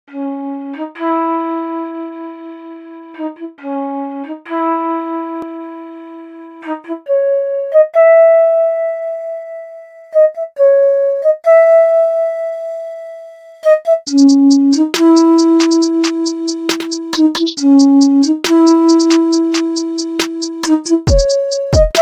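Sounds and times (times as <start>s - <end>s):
flute melody: 0.1s - 22.0s.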